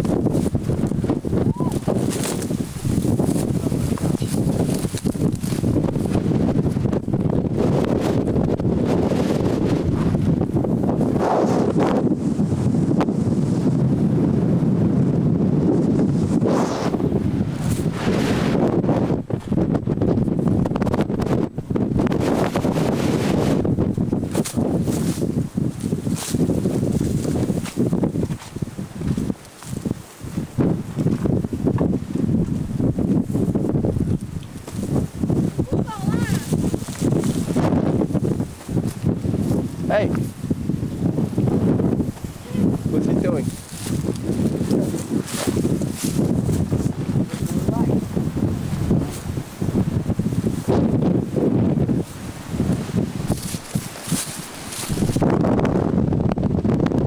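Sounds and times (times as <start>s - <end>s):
wind buffeting microphone: 0.0s - 57.0s.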